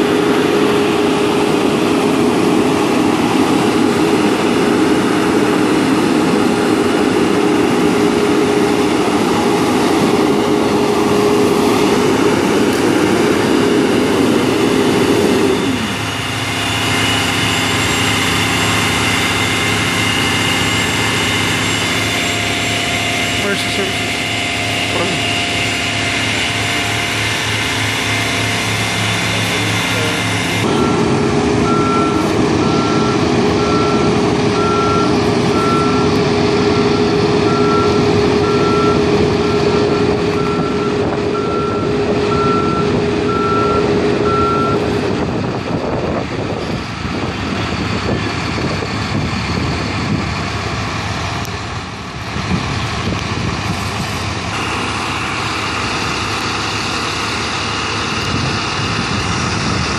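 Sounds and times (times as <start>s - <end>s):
truck reversing alarm beeping: 0.0s - 52.1s, 53.0s - 59.9s
truck engine running: 0.0s - 59.9s.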